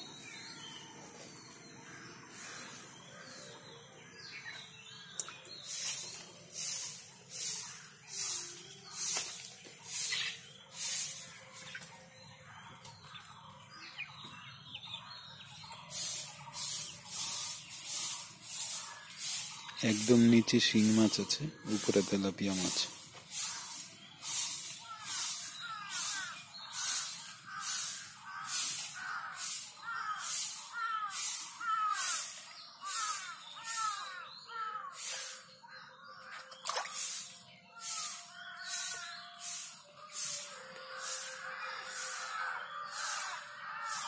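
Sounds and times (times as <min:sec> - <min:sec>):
faint bird chirps: 0:00.0 - 0:44.0.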